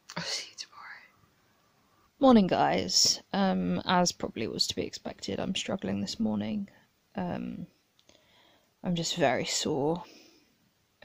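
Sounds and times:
woman whispering: 0.1s - 1.2s.

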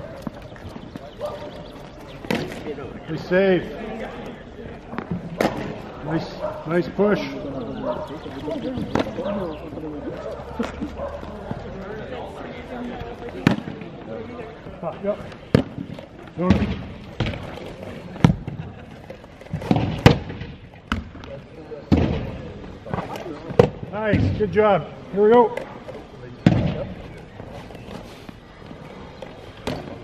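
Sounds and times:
lacrosse balls striking pads: 0.0s - 2.8s, 4.9s - 6.2s, 8.2s - 11.7s, 12.8s - 14.1s, 14.7s - 24.6s, 25.2s - 28.0s, 29.2s - 30.0s.

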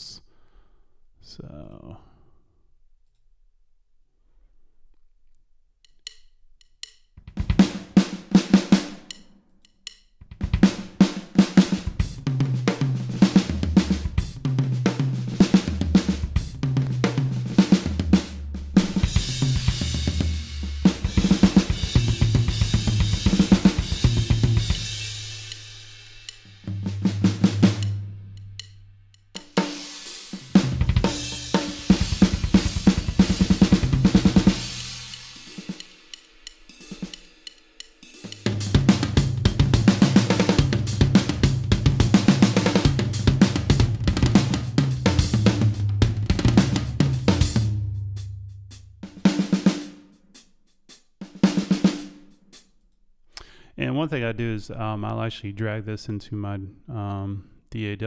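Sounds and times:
drum fills: 7.2s - 9.2s, 10.2s - 28.7s, 29.4s - 52.6s
cymbal wash: 33.9s - 38.7s.

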